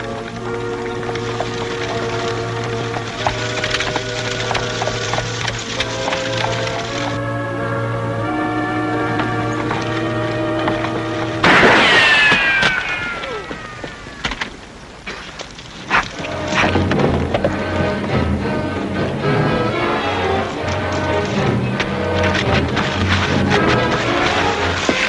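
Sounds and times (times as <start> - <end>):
background music: 0.0 - 11.9, 16.1 - 25.0
ricochet whine: 10.8 - 15.2
sharp cracks: 10.8 - 17.0
rifle shot: 11.4 - 13.2.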